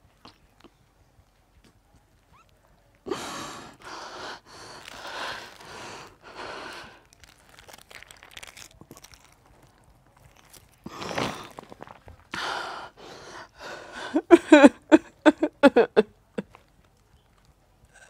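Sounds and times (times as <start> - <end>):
woman crying with heavy breaths: 3.1 - 7.0, 12.3 - 16.5
plastic water sachet crinkling: 3.9 - 12.3.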